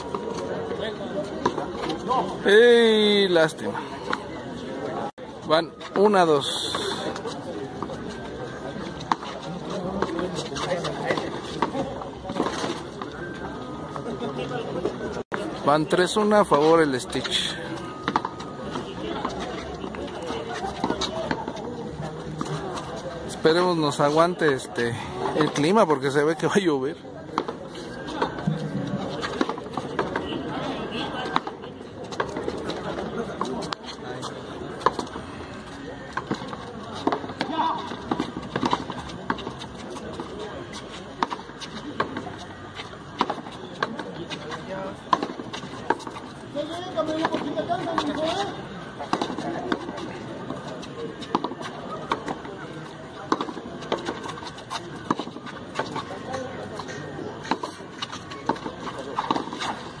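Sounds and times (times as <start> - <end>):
crowd chatter: 0.0 - 60.0.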